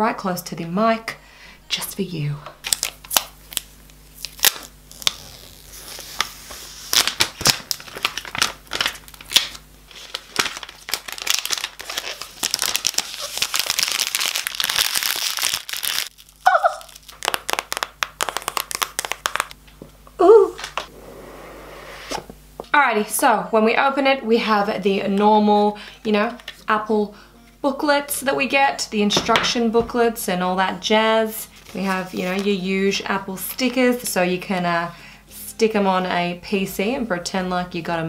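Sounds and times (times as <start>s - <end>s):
plastic wrap crinkling and tearing: 2.6s - 19.6s.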